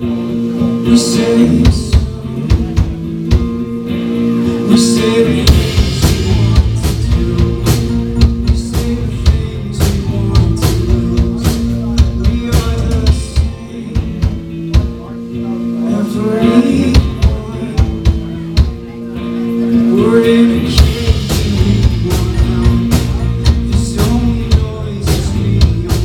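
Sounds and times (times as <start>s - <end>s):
rock band playing live: 0.0s - 26.0s
drum hits: 5.5s - 15.1s, 20.7s - 26.0s.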